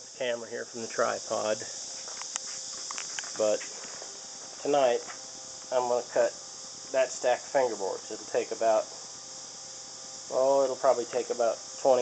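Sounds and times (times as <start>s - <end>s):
steady high hiss: 0.0s - 12.0s.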